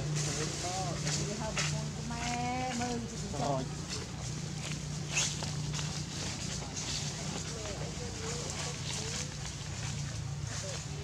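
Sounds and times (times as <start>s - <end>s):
leaves and branches rustling: 0.0s - 11.0s.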